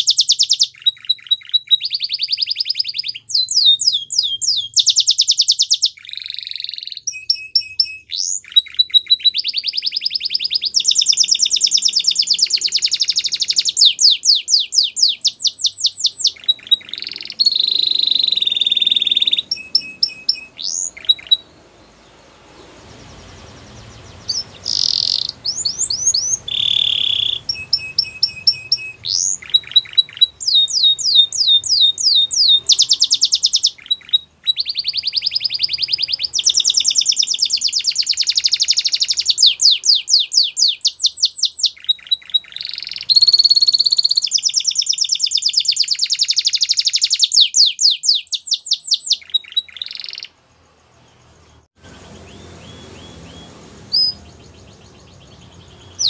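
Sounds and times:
canary singing: 0.0s - 56.0s.

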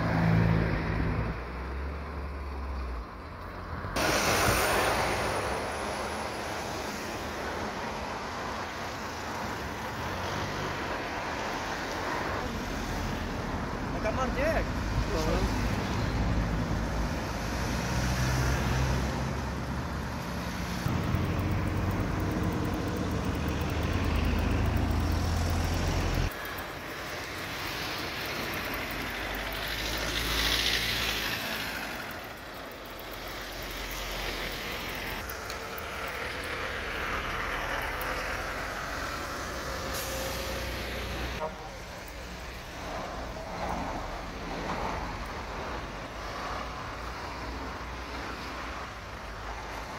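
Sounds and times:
vehicles passing with hiss: 0.0s - 49.9s
heavy engine rumbling: 31.0s - 48.0s.

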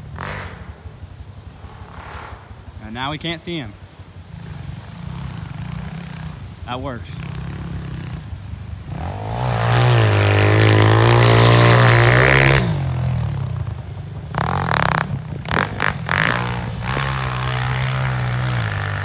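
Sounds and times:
motorcycle engine revving: 0.0s - 19.0s.

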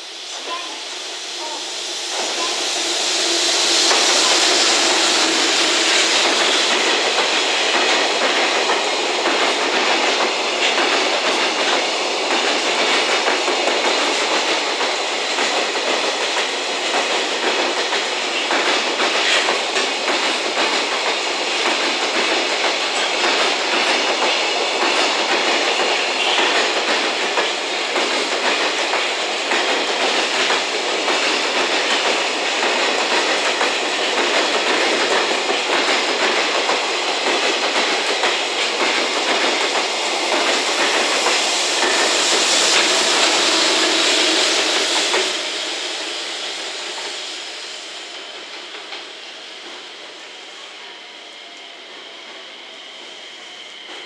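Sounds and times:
train wheels rolling on rails: 0.0s - 54.0s
clickety-clack over rail joints: 3.8s - 45.3s.

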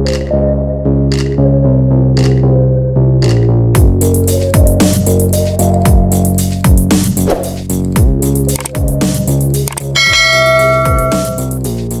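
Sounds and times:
electronic background music: 0.0s - 12.0s
bright bell chime: 10.0s - 11.6s.

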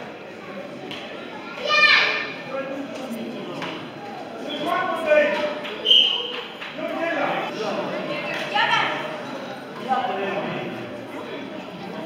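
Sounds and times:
crowd chatter: 0.0s - 12.0s
child's high-pitched shout: 1.6s - 2.3s.

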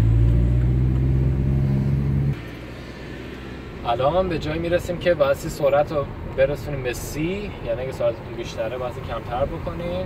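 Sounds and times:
car engine drone: 0.0s - 10.0s
road noise: 0.0s - 10.0s.

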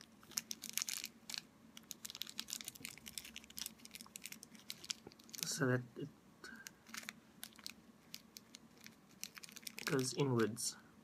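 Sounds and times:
plastic sheet crinkling: 0.0s - 5.7s, 6.6s - 10.6s.

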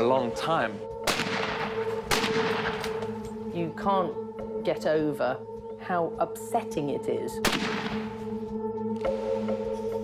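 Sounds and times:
rifle shots echoing: 1.0s - 3.0s, 7.4s - 8.1s.

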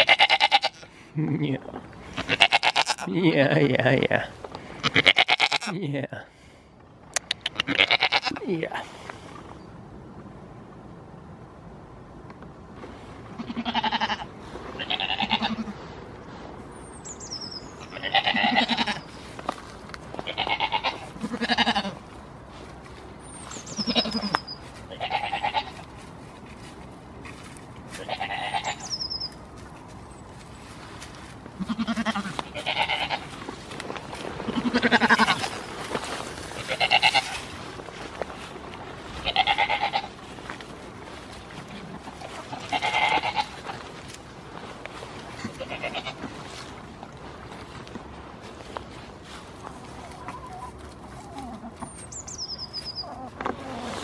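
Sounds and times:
goat bleating: 0.0s - 0.8s, 2.1s - 5.8s, 7.4s - 8.7s, 13.4s - 15.8s, 17.8s - 19.1s, 20.2s - 22.0s, 23.7s - 25.9s, 27.9s - 28.9s, 31.6s - 33.4s, 34.5s - 35.6s, 36.5s - 37.4s, 39.2s - 40.1s, 41.7s - 43.8s, 45.4s - 46.3s.

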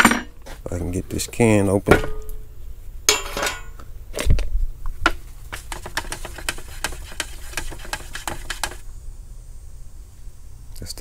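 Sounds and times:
paint can lid scraping: 5.4s - 8.8s
stir stick knocking in can: 5.5s - 8.8s.

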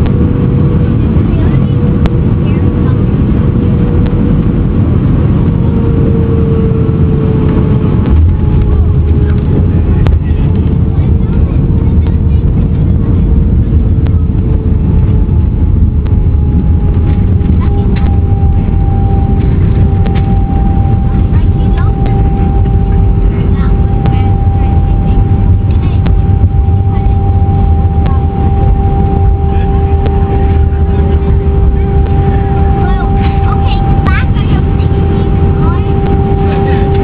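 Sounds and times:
airliner cabin rumble: 0.0s - 37.0s
jet engine tones: 0.0s - 37.0s.

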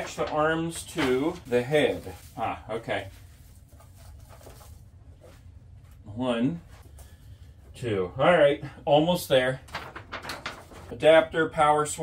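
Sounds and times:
soft handling sounds: 0.0s - 8.0s.

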